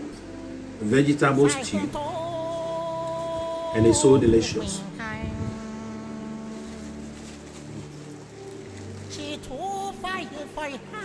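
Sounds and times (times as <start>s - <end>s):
drone-like background music: 0.0s - 11.0s.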